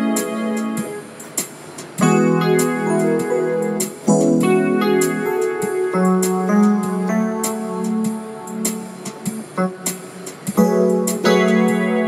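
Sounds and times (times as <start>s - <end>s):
electric piano chords: 0.0s - 12.0s.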